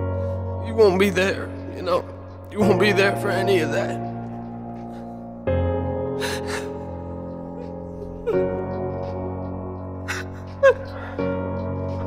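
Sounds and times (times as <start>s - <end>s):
slow backing music: 0.0s - 12.0s
man crying: 6.2s - 11.2s.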